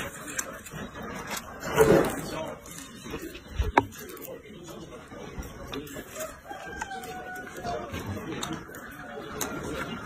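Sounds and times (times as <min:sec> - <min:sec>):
rooster crowing: 0:06.2 - 0:07.9.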